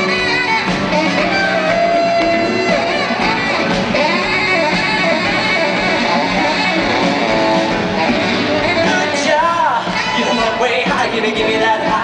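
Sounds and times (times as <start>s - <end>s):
electric and acoustic guitars: 0.0s - 12.0s
live band playing instrumental: 0.0s - 12.0s.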